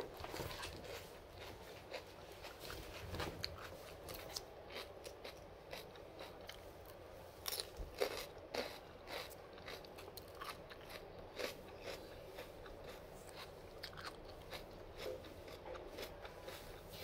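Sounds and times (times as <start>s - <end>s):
person chewing crunchy vegetable: 0.0s - 17.0s.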